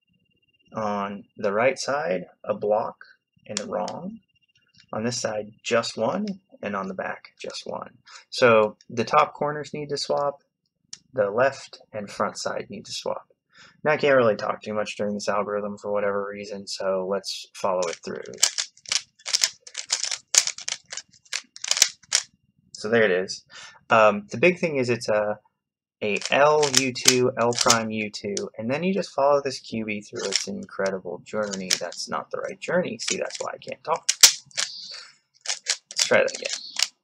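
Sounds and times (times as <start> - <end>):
plastic scraping slide: 17.8 - 22.3, 26.1 - 27.8, 30.2 - 30.6, 31.4 - 32.1, 33.0 - 37.0
puzzle cube clicking: 17.8 - 22.3, 26.0 - 28.5, 30.1 - 37.0.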